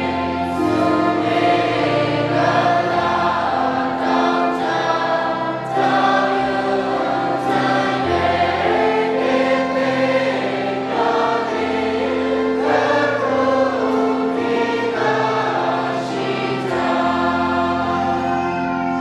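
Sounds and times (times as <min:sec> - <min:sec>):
group singing a hymn: 0:00.0 - 0:19.0
keyboard accompaniment: 0:00.0 - 0:19.0.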